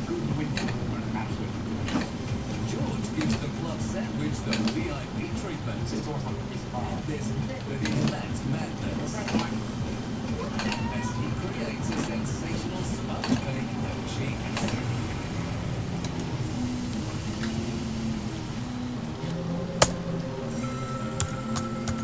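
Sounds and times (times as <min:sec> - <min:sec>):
low steady hum: 0:00.0 - 0:22.0
stepper motors whining: 0:00.0 - 0:22.0.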